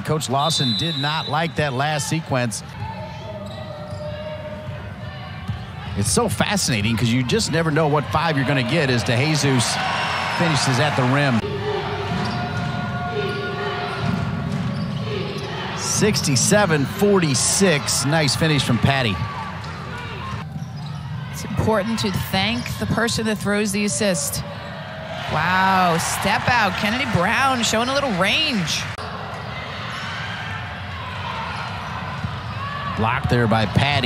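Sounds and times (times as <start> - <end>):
arena crowd noise: 0.0 - 34.0.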